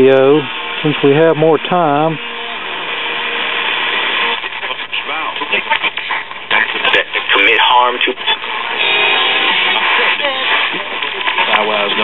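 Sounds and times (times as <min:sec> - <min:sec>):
faint radio broadcast: 0:00.0 - 0:12.0
radio static: 0:00.0 - 0:12.0.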